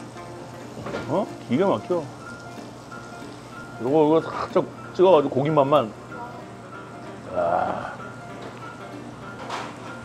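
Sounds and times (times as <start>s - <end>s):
light jingle-like music: 0.0s - 10.0s
short wavering vocal sound: 7.3s - 8.0s.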